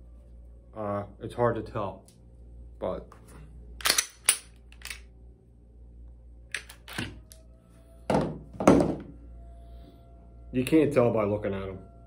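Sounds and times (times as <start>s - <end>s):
pistol slide clicks and clacks: 3.8s - 5.1s.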